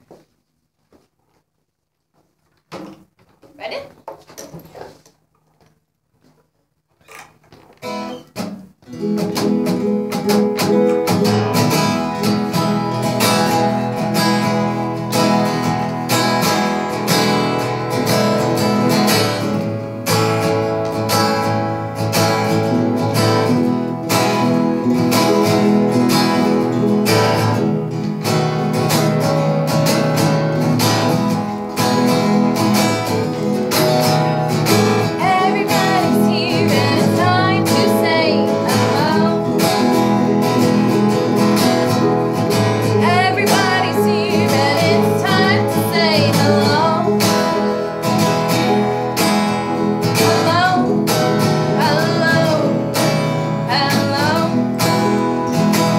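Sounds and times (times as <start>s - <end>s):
acoustic guitar strumming: 7.0s - 55.9s
person singing: 34.9s - 41.1s, 42.4s - 47.6s, 50.0s - 53.0s, 53.6s - 54.8s.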